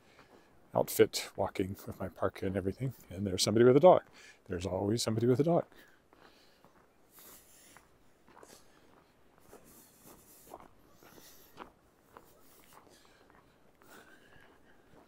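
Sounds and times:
footsteps crunching in snow: 5.6s - 15.0s.

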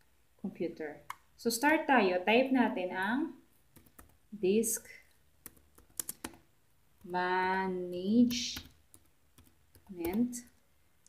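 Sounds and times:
laptop keyboard typing: 3.7s - 4.2s, 5.4s - 6.4s, 7.8s - 10.6s.

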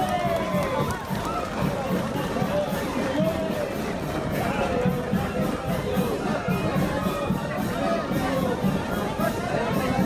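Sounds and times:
crowd shouting and calling out: 0.0s - 10.0s.

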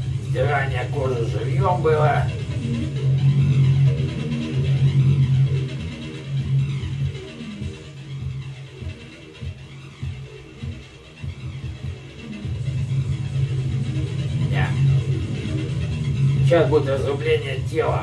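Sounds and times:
death metal music: 0.0s - 18.0s.

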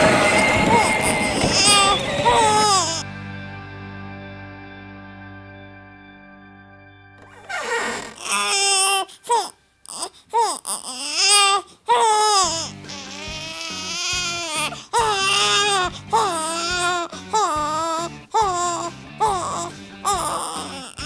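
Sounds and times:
toddler crying: 0.4s - 3.0s, 8.2s - 21.0s.

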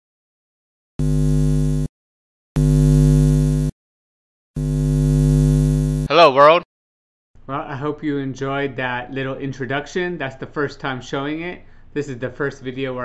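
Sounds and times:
electric neon buzzing: 1.0s - 1.9s, 2.6s - 3.7s, 4.6s - 6.1s.

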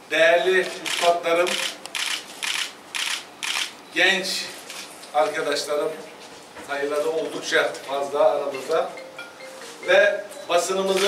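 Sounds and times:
camera shutter clicks: 0.8s - 3.8s.

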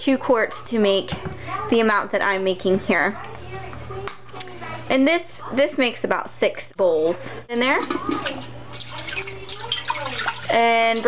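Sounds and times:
broth pouring into metal pot: 8.0s - 11.0s.

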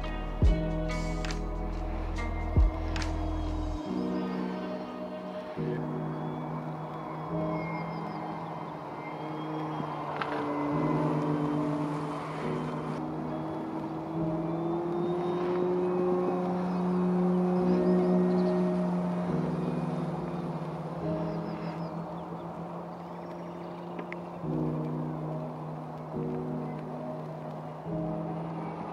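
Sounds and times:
background music: 0.0s - 28.9s.

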